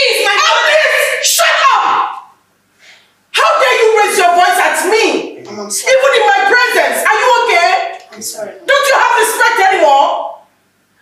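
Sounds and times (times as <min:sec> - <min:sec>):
woman shouting: 0:00.0 - 0:02.4, 0:03.3 - 0:08.0, 0:08.6 - 0:10.4.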